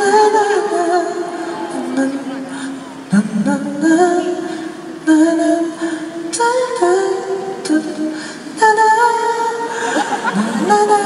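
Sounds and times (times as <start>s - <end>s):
man singing into microphone: 0.0s - 11.0s.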